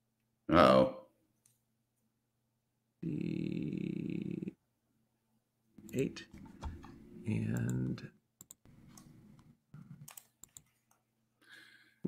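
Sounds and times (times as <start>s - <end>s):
faint computer clicks: 10.0s - 11.0s.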